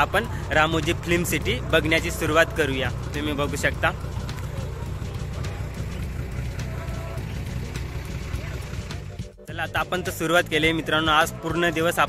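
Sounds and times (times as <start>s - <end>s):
diesel bus engine idling: 0.0s - 12.0s.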